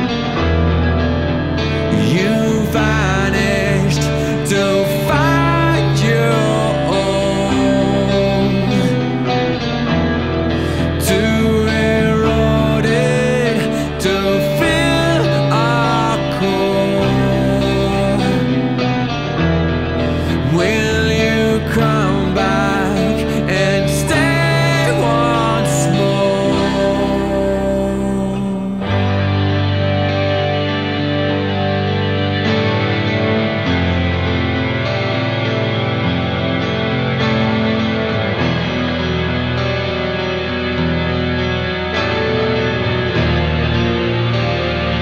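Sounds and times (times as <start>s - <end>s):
guitar: 0.0s - 45.0s
rock band instrumental: 0.0s - 45.0s
sustained bass notes: 0.0s - 45.0s.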